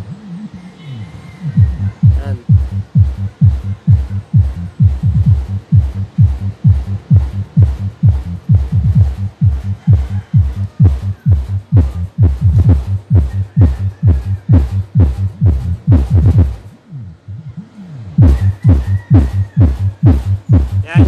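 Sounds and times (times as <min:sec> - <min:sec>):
deep kick drum thumps: 0:01.6 - 0:16.6, 0:18.2 - 0:21.0
loud electronic dance music: 0:01.6 - 0:16.7, 0:18.2 - 0:21.0.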